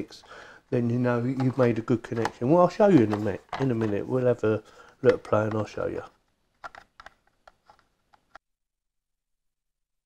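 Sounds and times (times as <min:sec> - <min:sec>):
plastic device clicks and taps: 0:06.6 - 0:08.4.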